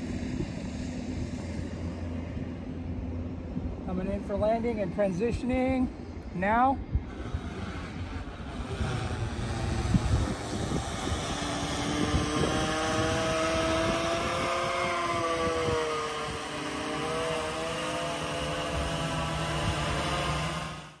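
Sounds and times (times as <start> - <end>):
wind rumble on microphone: 0.0 - 20.9
drone propellers humming: 0.0 - 21.0.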